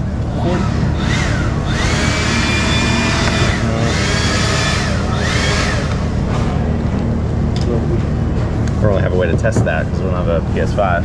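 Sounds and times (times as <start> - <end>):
electric motor whining: 0.0 - 6.7
steady low hum: 0.0 - 11.0.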